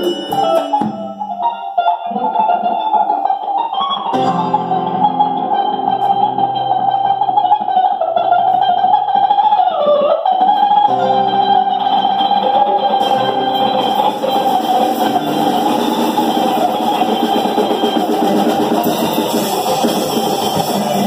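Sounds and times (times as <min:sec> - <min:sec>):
sustained guitar note: 0:03.9 - 0:09.1, 0:10.5 - 0:21.0
drum and cymbal hits: 0:13.0 - 0:21.0.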